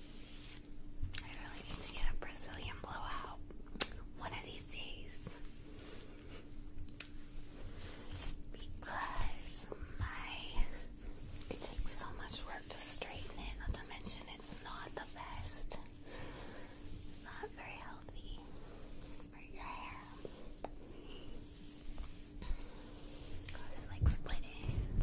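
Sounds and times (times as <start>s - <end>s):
hairbrush through hair: 0.0s - 2.5s, 7.3s - 25.0s
faint steady hum: 0.0s - 25.0s
woman whispering: 1.2s - 3.5s, 4.2s - 5.4s, 8.5s - 16.0s, 17.2s - 20.5s, 23.4s - 25.0s.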